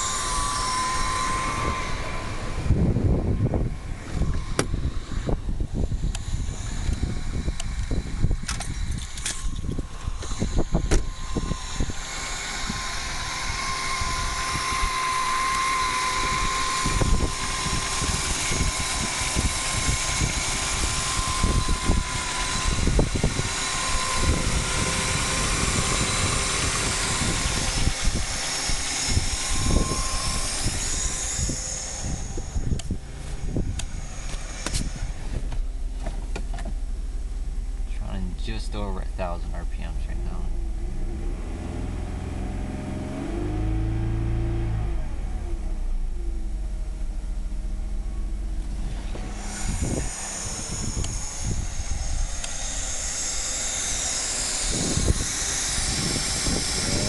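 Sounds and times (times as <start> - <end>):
car engine idling: 0.0 - 57.0
high whine: 0.0 - 57.0.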